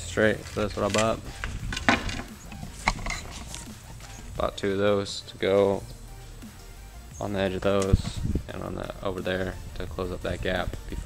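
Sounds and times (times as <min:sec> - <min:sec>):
wooden boards knocking: 0:01.7 - 0:03.1.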